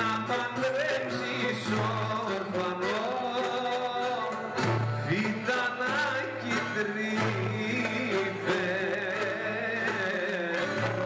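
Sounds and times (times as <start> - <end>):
man singing into microphone: 0.0 - 11.0
oud: 0.0 - 11.0
plucked lute: 0.0 - 11.0
violin: 0.0 - 11.0.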